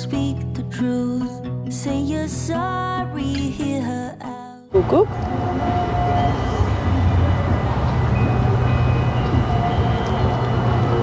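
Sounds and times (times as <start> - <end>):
guitar music: 0.0 - 11.0
low outdoor rumble: 4.8 - 11.0.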